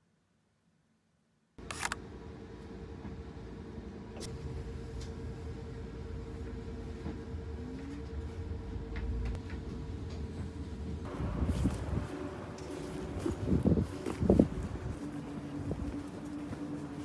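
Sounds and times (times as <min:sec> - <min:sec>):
constant hum: 0:01.6 - 0:17.0
vehicle cabin rumble: 0:04.2 - 0:17.0.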